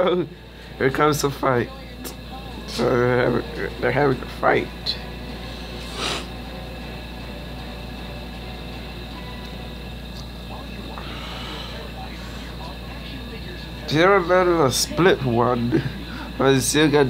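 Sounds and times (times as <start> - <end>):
low hum: 0.0 - 17.0
muffled voices arguing: 0.8 - 5.1, 10.3 - 17.0.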